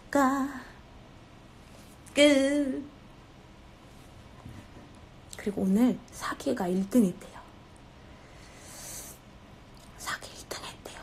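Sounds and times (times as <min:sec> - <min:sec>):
woman whispering: 0:10.0 - 0:11.0.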